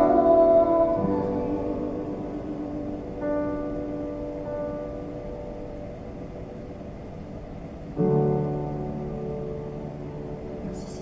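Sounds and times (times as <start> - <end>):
low room rumble: 0.0 - 11.0
piano chords: 0.0 - 11.0.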